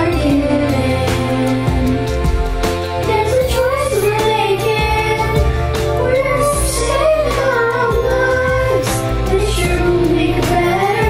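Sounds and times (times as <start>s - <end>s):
children singing together: 0.0s - 2.1s, 3.0s - 11.0s
instrumental backing track: 0.0s - 11.0s.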